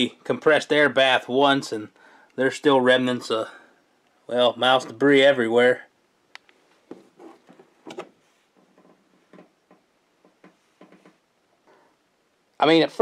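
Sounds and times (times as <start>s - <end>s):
faint handling clicks and knocks: 6.3s - 11.3s.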